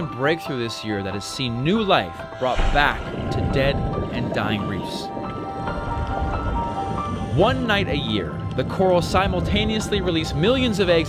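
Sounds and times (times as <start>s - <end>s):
background music of held notes: 0.0s - 11.0s
bubbling rush of water: 1.6s - 10.2s.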